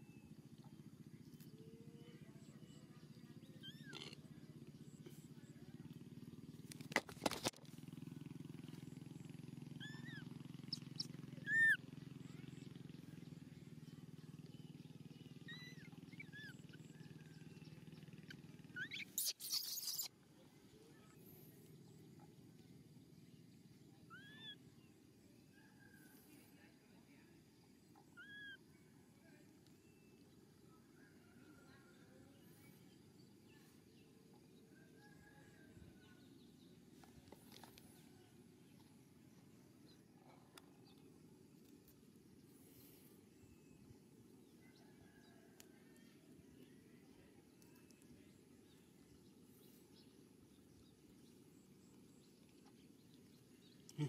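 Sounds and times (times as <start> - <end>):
arched chirps: 9.8 - 11.8, 18.7 - 20.1.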